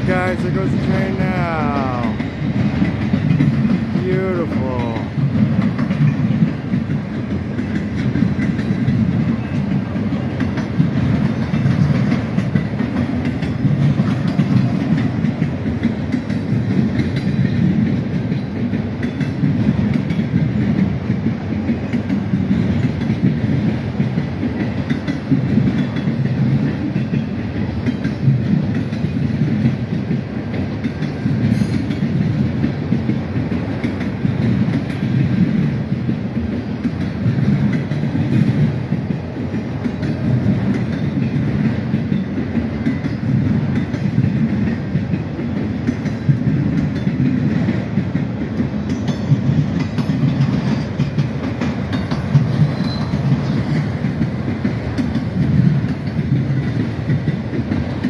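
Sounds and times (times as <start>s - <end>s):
freight train rolling past: 0.0s - 58.0s
wheels clacking on rails: 0.0s - 58.0s.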